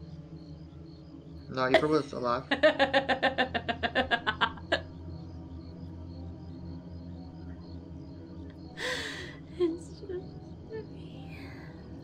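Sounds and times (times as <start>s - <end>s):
low steady drone: 0.0s - 12.0s
woman laughing maniacally: 1.7s - 4.8s, 8.8s - 9.8s.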